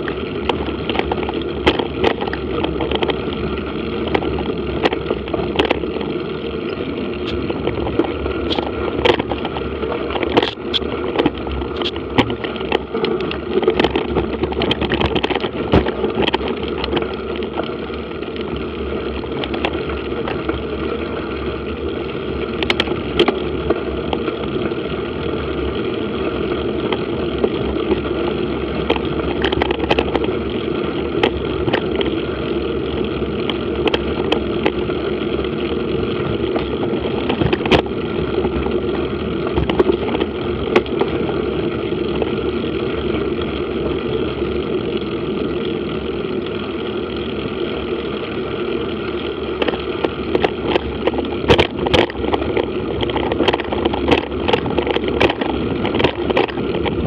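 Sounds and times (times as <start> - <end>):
bike clicks and knocks: 0.0 - 21.6, 22.4 - 57.0
bike tyres rumbling on gravel: 0.0 - 57.0
wind: 0.0 - 57.0.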